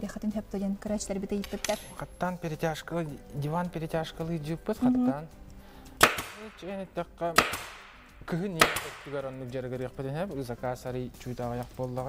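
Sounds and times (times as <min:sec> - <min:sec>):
sharp crack: 0:06.0 - 0:06.5.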